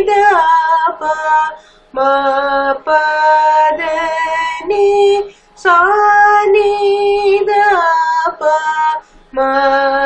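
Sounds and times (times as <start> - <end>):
woman singing vocal exercise: 0.0 - 10.0.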